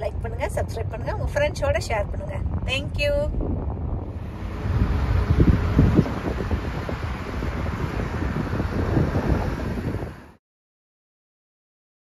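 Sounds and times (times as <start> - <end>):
rumbling road noise: 0.0 - 10.4
wind buffeting microphone: 0.0 - 10.4.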